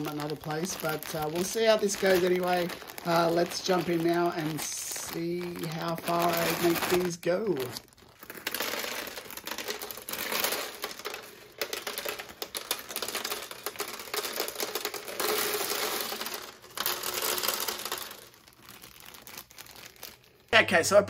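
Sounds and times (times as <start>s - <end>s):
plastic pieces clattering on tiles: 0.0s - 20.3s
plastic bag crinkling: 0.0s - 21.0s.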